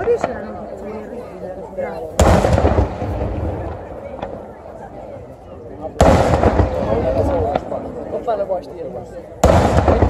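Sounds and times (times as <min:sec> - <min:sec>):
firework bang with deep rumble: 0:02.2 - 0:04.5, 0:06.0 - 0:07.8, 0:09.4 - 0:10.0.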